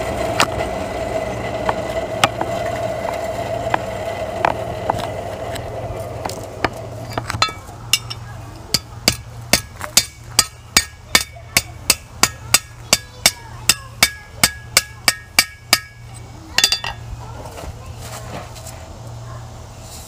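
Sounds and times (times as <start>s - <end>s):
hammer striking iron on anvil: 6.6s - 17.0s.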